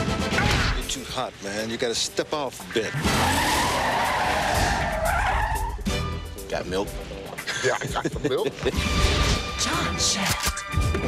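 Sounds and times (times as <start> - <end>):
car tyres squealing: 2.9 - 5.9.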